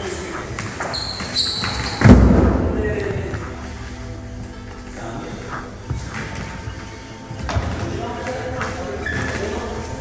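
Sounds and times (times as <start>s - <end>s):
feet squeaking on wooden floor: 0.0s - 10.0s
heavy thud on wooden floor: 2.0s - 2.8s.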